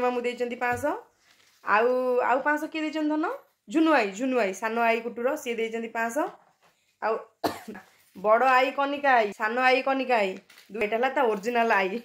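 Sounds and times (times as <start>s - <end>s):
sharp cough: 7.4s - 7.9s.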